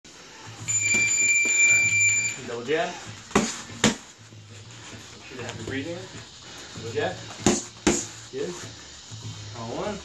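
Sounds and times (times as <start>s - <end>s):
high-pitched electronic beep: 0.7s - 2.5s.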